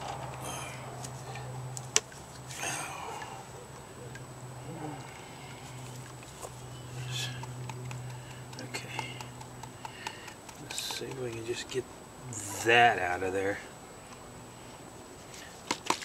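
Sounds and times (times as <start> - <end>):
low hum: 0.0 - 12.7.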